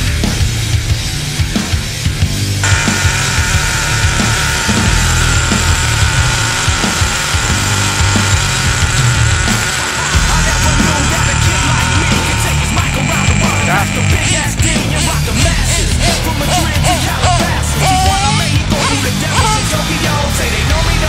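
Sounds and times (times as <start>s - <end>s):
loud rock music: 0.0s - 21.0s
high-pitched whine: 2.6s - 21.0s.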